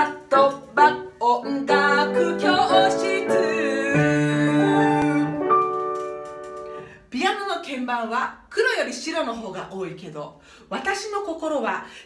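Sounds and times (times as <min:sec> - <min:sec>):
grand piano chords: 0:00.0 - 0:06.9.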